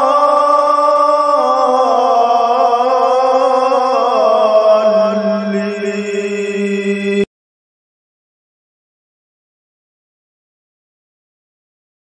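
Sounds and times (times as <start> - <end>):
man chanting one long note: 0.0 - 7.3.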